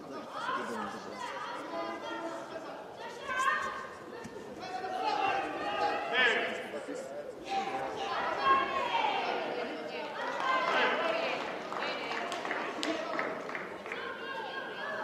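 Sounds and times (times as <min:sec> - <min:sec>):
spectators chattering: 0:00.0 - 0:15.0.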